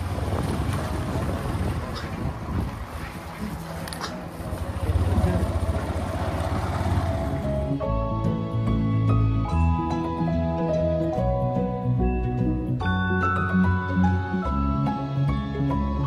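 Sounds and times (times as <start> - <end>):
wind buffeting microphone: 0.0 - 7.7
motorcycle engine rumble: 0.0 - 8.6.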